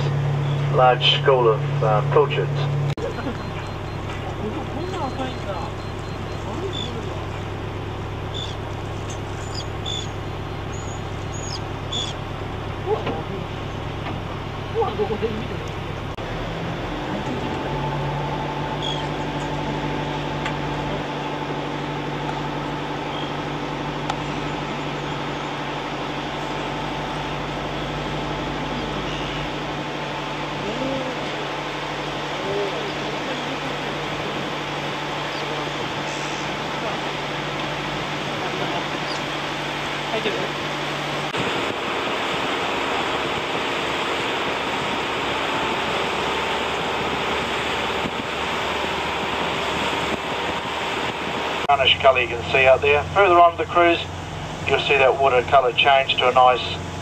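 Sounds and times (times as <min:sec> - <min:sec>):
boat engine humming: 0:00.0 - 0:57.0
faint voices: 0:00.7 - 0:07.6.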